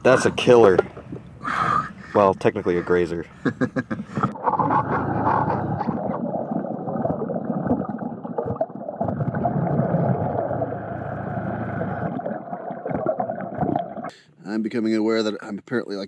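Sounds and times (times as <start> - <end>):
muffled water gurgling: 4.2 - 14.1.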